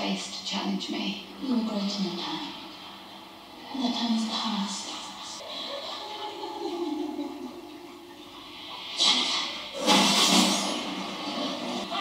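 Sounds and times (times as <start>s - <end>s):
loud burst of noise: 8.5s - 12.0s.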